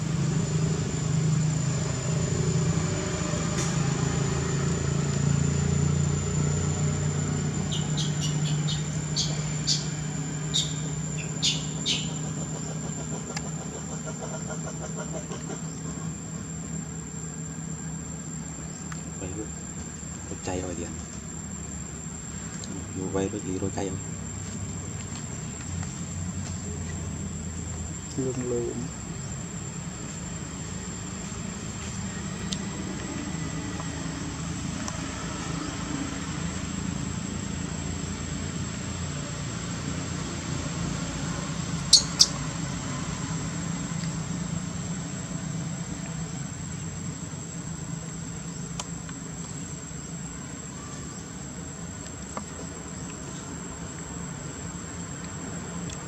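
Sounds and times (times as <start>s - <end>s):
insect drone: 0.0s - 56.0s.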